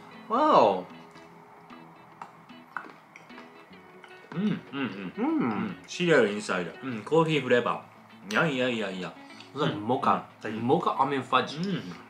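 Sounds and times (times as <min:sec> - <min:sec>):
soft plucked guitar music: 0:00.0 - 0:12.0.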